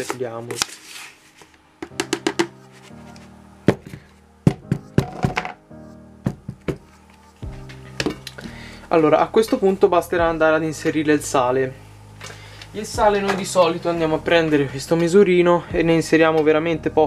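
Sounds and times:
soft music: 0.0 - 17.0
plastic scoop knocking on bucket: 1.8 - 2.5, 4.5 - 5.6.

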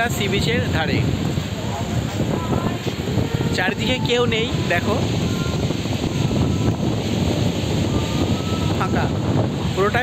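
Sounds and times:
sea surf: 0.0 - 10.0
wind buffeting microphone: 0.0 - 10.0.

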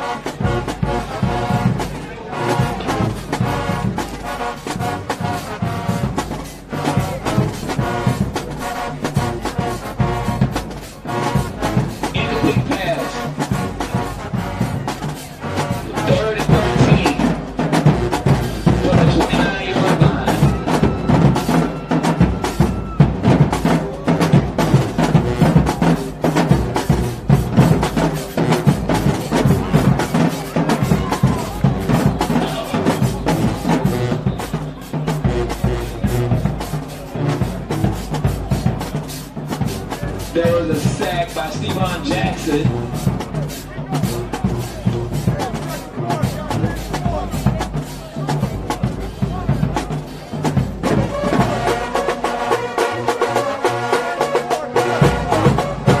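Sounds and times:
brass horns playing: 0.0 - 56.0
drums keeping a steady beat: 0.0 - 56.0.

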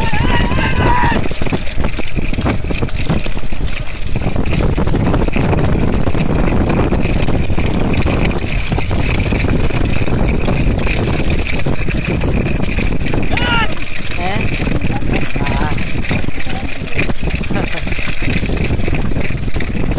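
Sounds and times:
vehicle running: 0.0 - 19.9
wind rushing over microphone: 0.0 - 19.9
voice calling out: 13.3 - 14.4.

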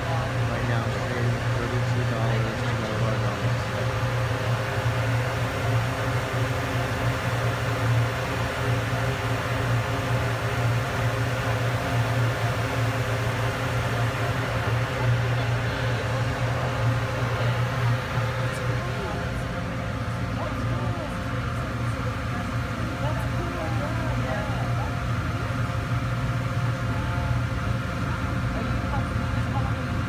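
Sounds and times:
machinery humming: 0.0 - 30.0.

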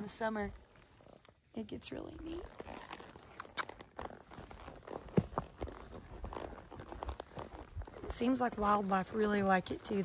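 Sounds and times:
hooves on dirt: 0.0 - 10.0.

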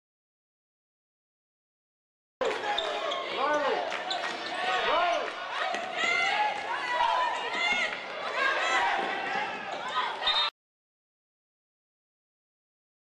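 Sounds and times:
sneakers squeaking: 2.4 - 6.3, 7.2 - 10.5
voices in arena: 2.4 - 10.5.

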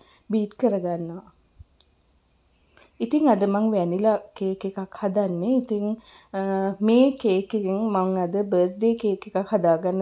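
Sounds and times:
person's voice: 0.3 - 1.3, 3.0 - 10.0
faint click: 1.6 - 2.1.

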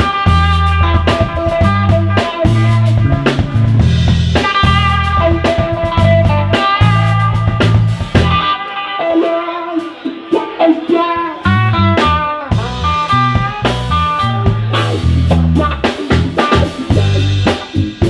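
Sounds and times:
electric bass: 0.0 - 8.5, 11.2 - 18.0
drum kit: 0.0 - 18.0
electric guitar: 0.0 - 18.0.

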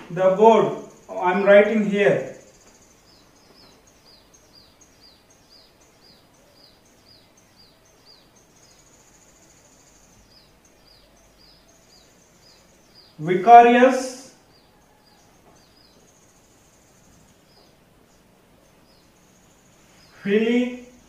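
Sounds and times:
bird trills: 0.0 - 21.0
small bird chirping: 0.0 - 21.0.

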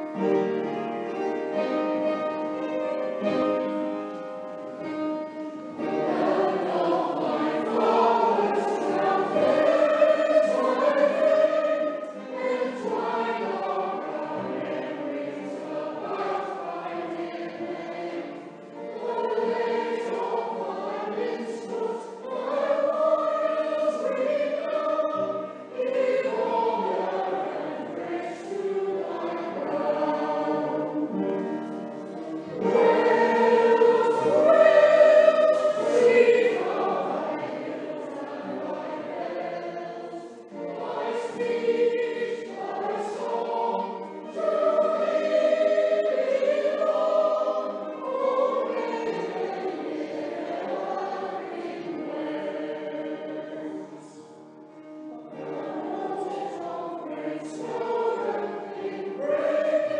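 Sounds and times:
mixed choir singing: 0.0 - 59.9.

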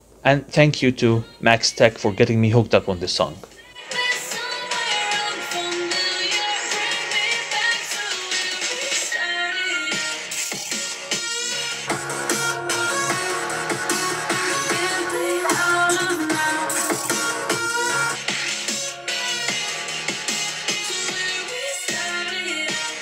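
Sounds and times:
electronic dance music with vocals: 0.8 - 23.0.

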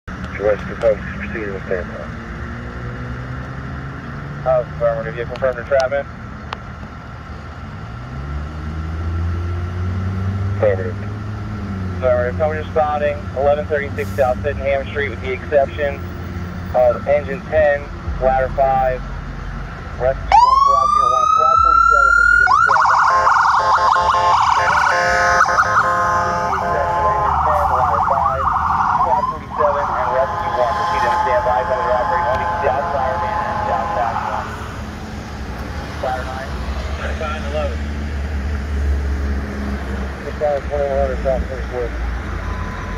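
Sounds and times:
vehicle engine revving: 0.1 - 42.9
ambulance siren wailing and yelping: 20.0 - 34.8, 40.8 - 42.9.

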